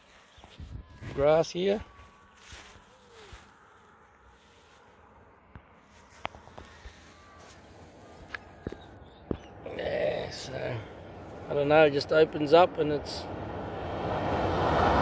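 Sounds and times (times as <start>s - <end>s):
footsteps on dry grass: 0.0s - 9.5s.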